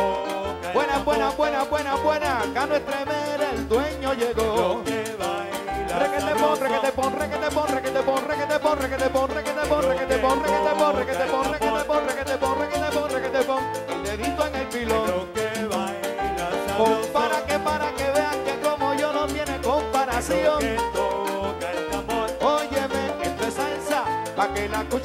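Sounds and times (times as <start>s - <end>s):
live salsa band playing: 0.0s - 25.0s.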